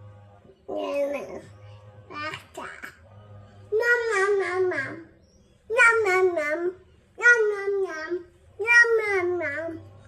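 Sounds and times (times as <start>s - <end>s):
faint background music: 0.0s - 10.0s
toddler vocal sound: 0.6s - 3.1s, 3.7s - 10.0s.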